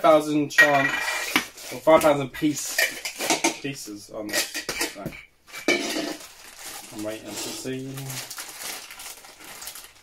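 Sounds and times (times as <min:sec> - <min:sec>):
cans and plastic bags handled: 0:00.1 - 0:10.0.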